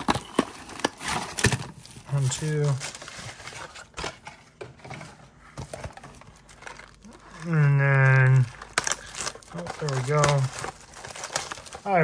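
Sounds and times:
plastic packaging clicks: 0.0s - 2.8s, 7.9s - 12.0s.

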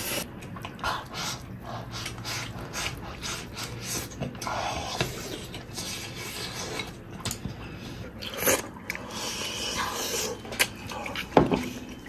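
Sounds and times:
chewing and gnawing: 0.2s - 12.0s.

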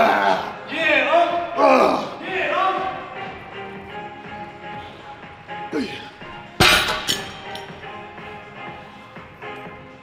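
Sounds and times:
dumbbells clanging down: 6.6s - 7.7s.

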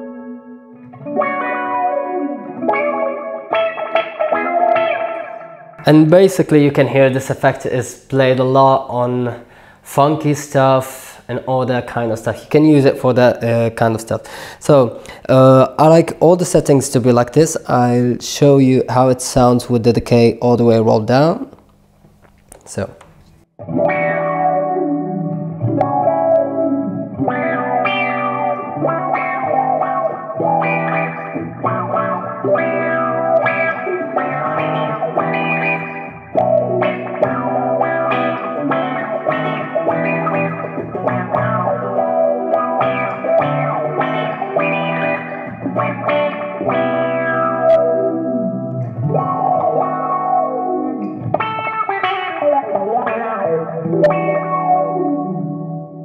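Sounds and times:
electric guitar with envelope filter: 0.0s - 7.4s, 21.3s - 56.0s.

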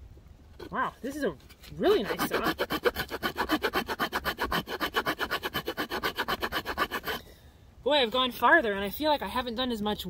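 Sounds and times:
saw cutting through branch: 1.6s - 7.2s.

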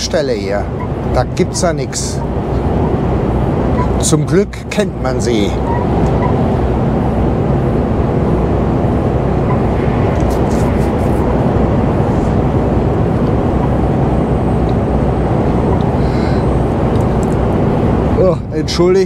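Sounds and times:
truck engine drone: 0.0s - 19.0s
tyre road noise: 0.0s - 19.0s.

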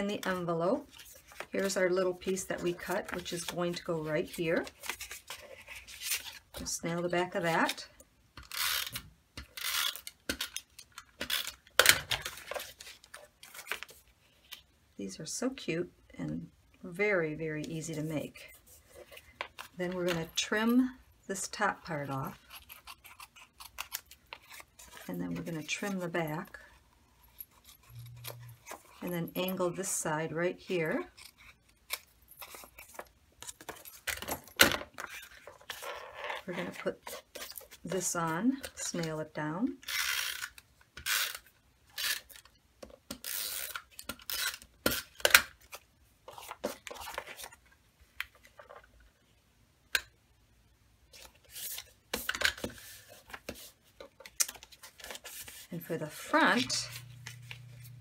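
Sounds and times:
paper rustling: 51.1s - 58.0s.

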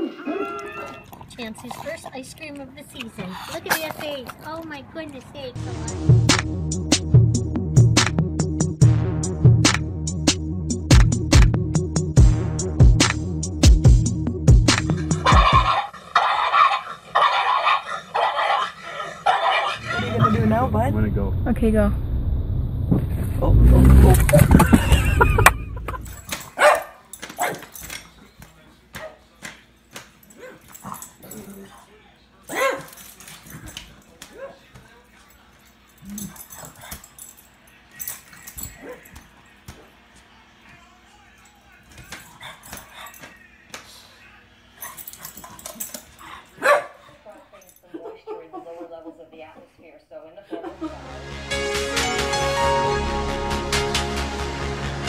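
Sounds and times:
dog barking and yipping: 15.0s - 20.6s, 26.3s - 27.8s, 32.5s - 33.0s, 44.8s - 47.2s.

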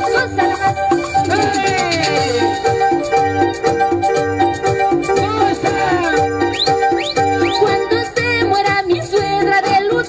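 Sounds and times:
electronic keyboard folk dance music: 0.0s - 10.0s.

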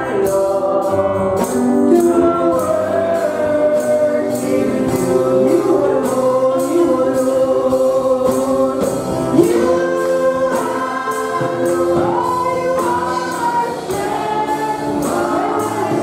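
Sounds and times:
group singing through microphones: 0.0s - 16.0s
steady percussion beat: 0.0s - 16.0s.

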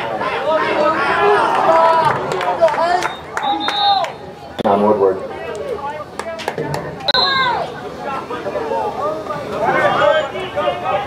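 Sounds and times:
people shouting: 0.0s - 2.3s.

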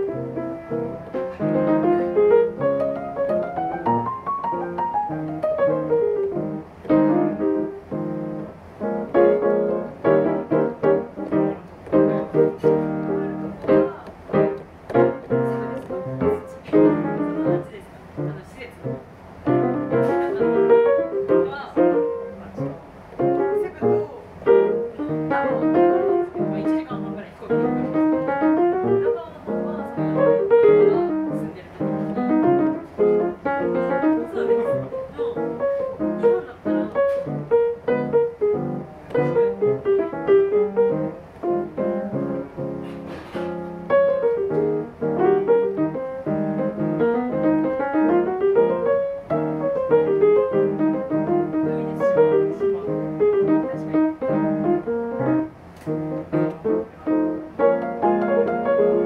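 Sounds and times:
solo jazz piano: 0.0s - 59.0s.

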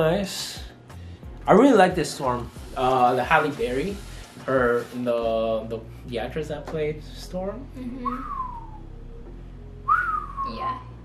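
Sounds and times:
man whistling gliding notes: 8.0s - 8.9s, 9.8s - 10.9s.

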